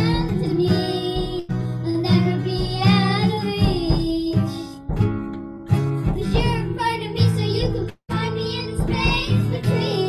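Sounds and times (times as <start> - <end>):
girls singing pop ballad: 0.0 - 4.9, 6.1 - 10.0
strummed acoustic guitar: 0.0 - 10.0.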